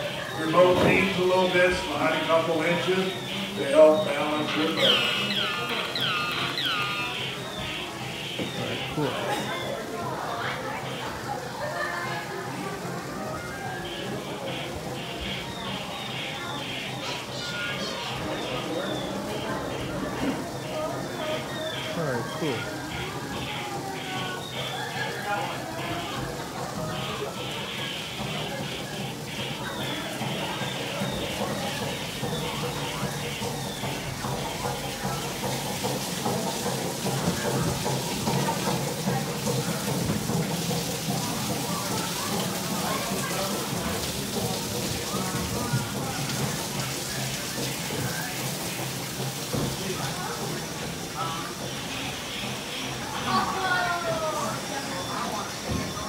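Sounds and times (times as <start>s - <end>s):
ride audio: 0.0s - 11.5s, 13.4s - 36.4s
faint voices: 0.0s - 56.0s
water rushing and splashing: 0.0s - 56.0s.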